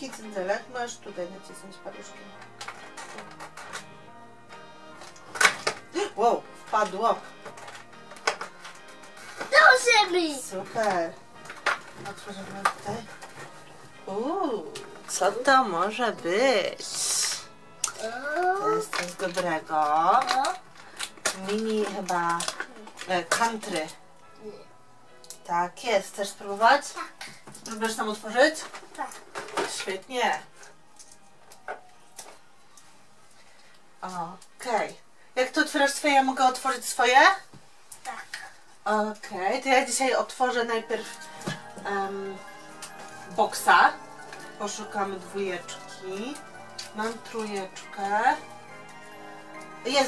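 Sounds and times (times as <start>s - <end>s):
quiet background music: 0.0s - 50.0s
wrapper crinkling: 16.9s - 24.0s.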